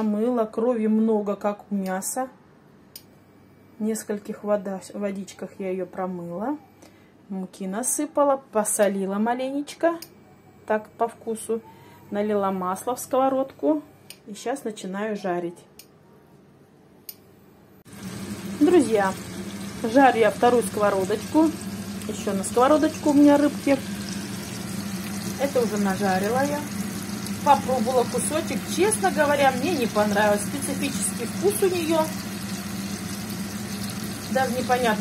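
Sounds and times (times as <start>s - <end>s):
low mechanical hum: 15.6s - 35.0s
fish sizzling in hot oil: 17.9s - 35.0s.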